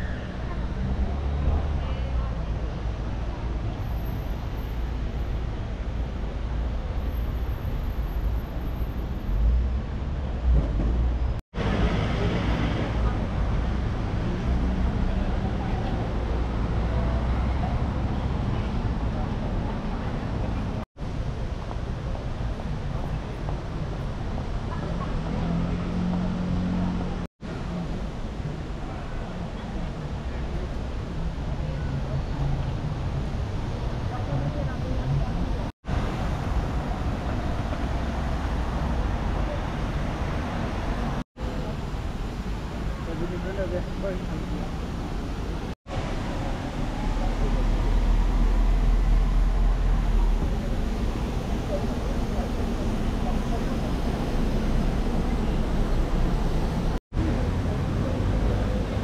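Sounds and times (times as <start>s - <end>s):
traffic passing: 0.0s - 59.0s
voices of passers-by: 0.0s - 59.0s.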